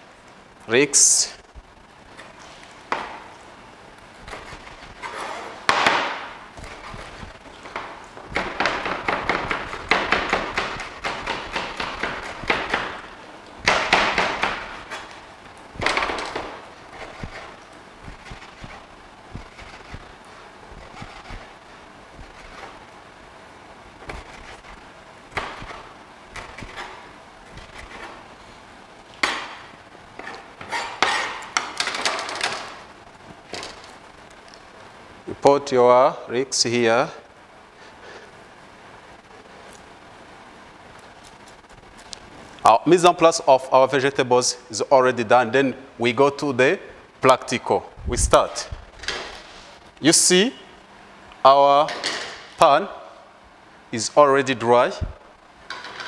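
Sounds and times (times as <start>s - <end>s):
knife chopping on plastic board: 7.8s - 13.0s, 13.6s - 14.8s, 25.3s - 27.0s.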